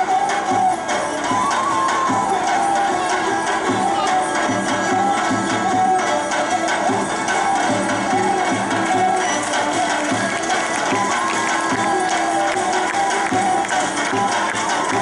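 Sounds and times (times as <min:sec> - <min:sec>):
crowd noise: 0:00.0 - 0:15.0
folk dance music: 0:00.0 - 0:15.0.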